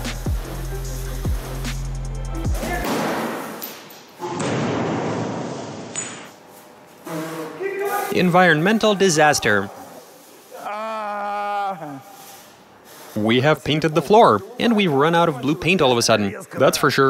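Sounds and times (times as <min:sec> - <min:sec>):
music with deep bass: 0:00.0 - 0:02.9.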